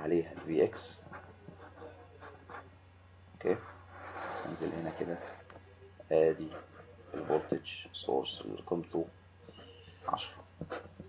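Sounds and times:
low electrical hum: 0.0s - 11.0s
stylus scratching on pen tablet: 0.3s - 2.7s, 3.4s - 5.5s, 6.1s - 7.7s.

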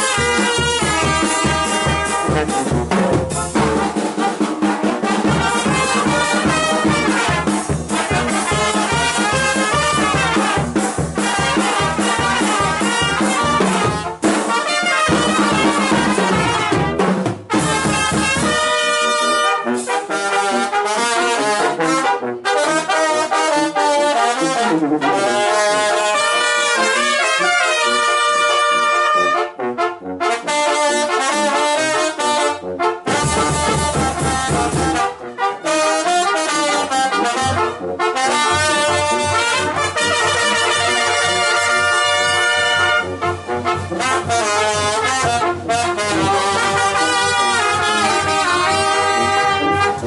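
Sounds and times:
snare drums: 0.0s - 29.2s, 30.3s - 50.0s
trumpets and trombones melody: 0.0s - 50.0s
bass drum with cymbal: 0.1s - 18.6s, 33.1s - 35.0s.

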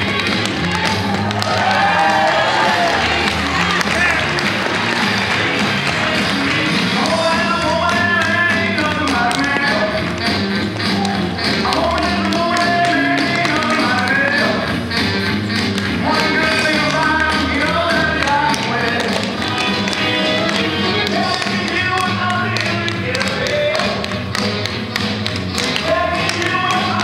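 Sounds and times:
upbeat dance music: 0.0s - 27.0s
dance shoes tapping on parquet: 2.8s - 27.0s.

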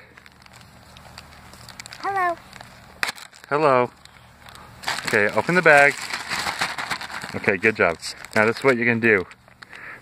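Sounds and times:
plastic bag crinkling: 0.0s - 9.9s.

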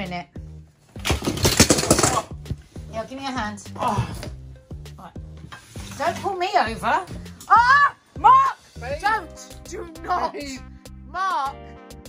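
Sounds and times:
clutter rustling and clattering: 0.9s - 2.4s.

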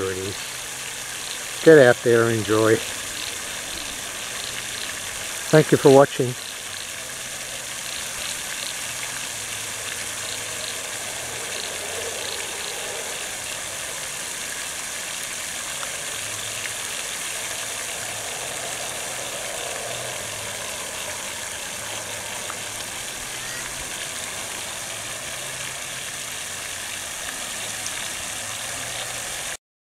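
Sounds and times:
fountain jets spraying water: 0.0s - 29.6s
low hum: 6.4s - 29.5s.

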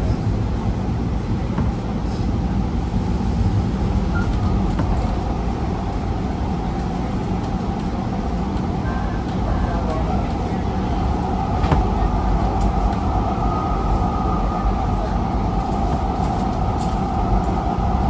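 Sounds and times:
wheels rumbling on rail: 0.0s - 18.0s.

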